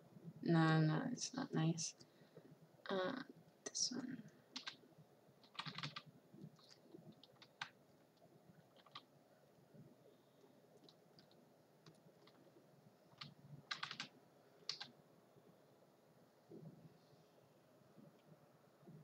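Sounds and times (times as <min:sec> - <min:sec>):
computer keyboard clicks: 0:04.6 - 0:04.8, 0:05.4 - 0:07.8, 0:08.7 - 0:09.1, 0:10.8 - 0:12.4, 0:13.1 - 0:14.1, 0:14.7 - 0:14.9.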